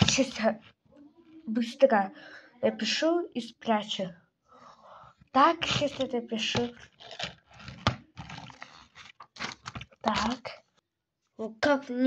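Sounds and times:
paper rustling: 5.4 - 10.6.

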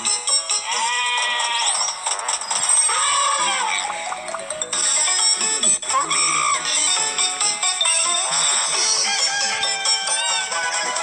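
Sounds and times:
toy character voice singing over music: 7.9 - 11.0.

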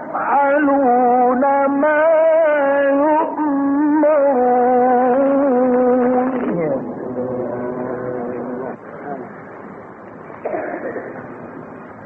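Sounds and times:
man reciting in long sung notes: 0.0 - 9.0
faint recording background noise: 0.0 - 12.0.

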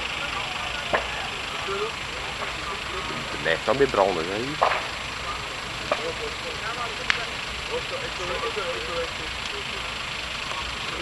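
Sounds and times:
bystanders talking: 0.0 - 11.0.

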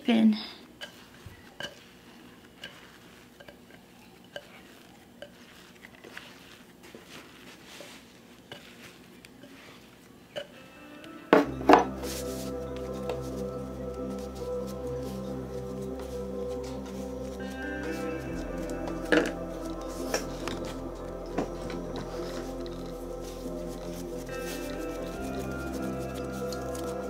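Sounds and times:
background music: 10.4 - 27.0.

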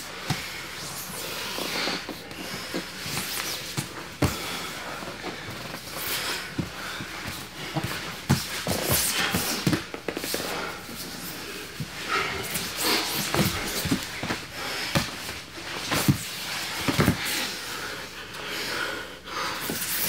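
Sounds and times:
hard breathing: 0.0 - 20.0.

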